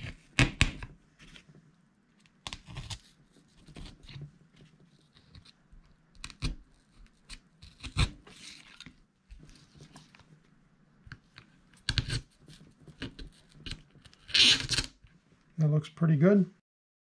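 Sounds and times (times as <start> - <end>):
rustling and scraping: 7.9 - 10.6.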